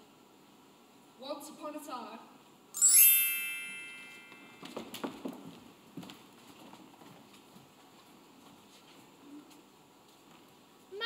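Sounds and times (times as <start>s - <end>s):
bar chimes glissando: 2.8s - 4.6s
footsteps on stage floor: 4.2s - 10.5s.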